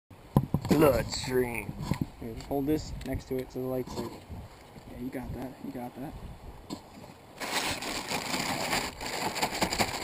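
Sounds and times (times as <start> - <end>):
plastic bag crinkling: 7.4 - 10.0.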